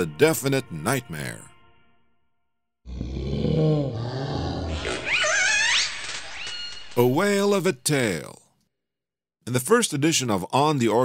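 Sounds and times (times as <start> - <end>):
animal's wavering cry: 3.5 - 6.6.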